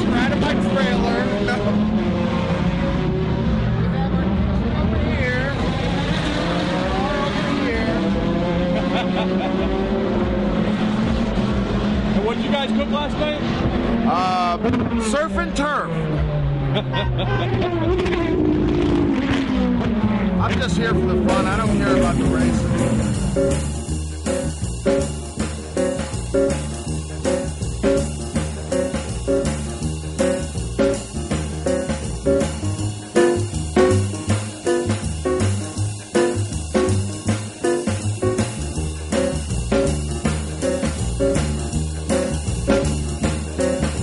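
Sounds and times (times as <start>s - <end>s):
race cars passing by: 0.0s - 44.0s
people's voices: 20.4s - 23.0s.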